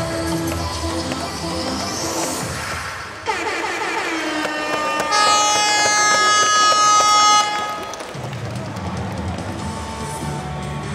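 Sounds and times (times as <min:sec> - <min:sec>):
music over public address: 0:00.0 - 0:10.9.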